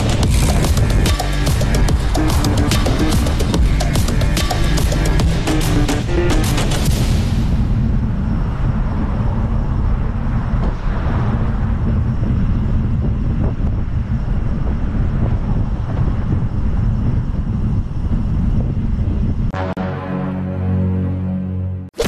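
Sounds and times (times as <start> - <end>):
wind buffeting microphone: 7.1 - 19.6.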